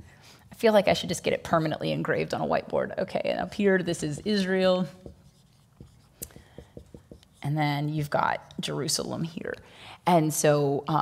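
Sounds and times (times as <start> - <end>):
marker writing on whiteboard: 3.9 - 7.7.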